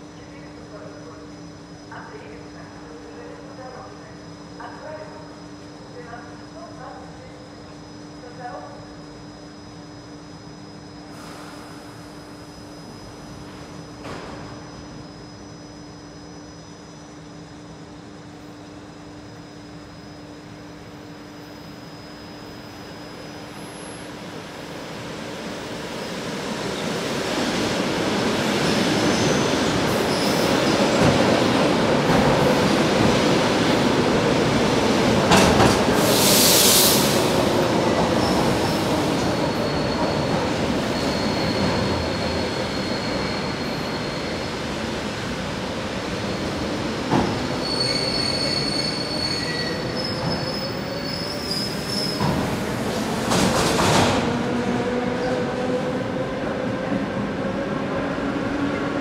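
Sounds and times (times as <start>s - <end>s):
high wheel or brake squeal: 40.9s - 44.4s, 47.6s - 52.2s.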